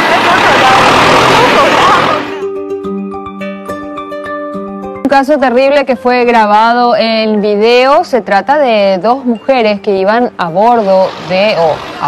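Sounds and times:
tractor running noise: 0:00.0 - 0:02.4.

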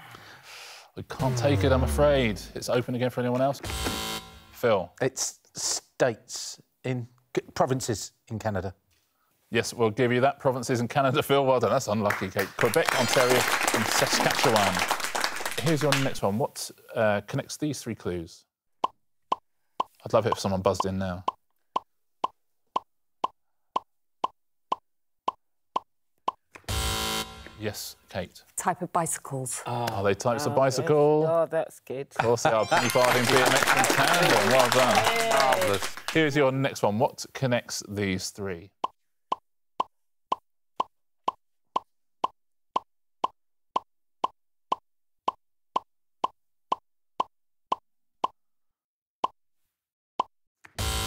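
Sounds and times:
buzzer tone: 0:03.7 - 0:04.5, 0:26.7 - 0:27.6, 0:50.8 - 0:51.0.

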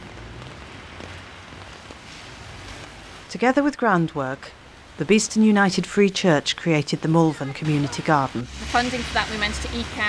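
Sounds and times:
rain on wet paving: 0:00.0 - 0:10.0.

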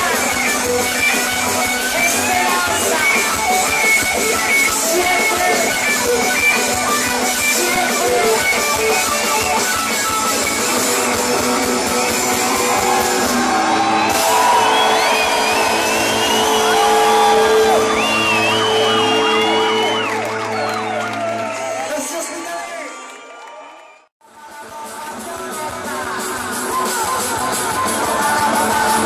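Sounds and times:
bass guitar: 0:00.0 - 0:21.8, 0:24.3 - 0:29.0
electric guitar: 0:00.0 - 0:21.9, 0:24.2 - 0:29.0
rock band playing live: 0:00.0 - 0:22.0, 0:24.3 - 0:29.0
drums: 0:00.0 - 0:22.9, 0:24.2 - 0:29.0
crowd shouting: 0:12.0 - 0:24.0.

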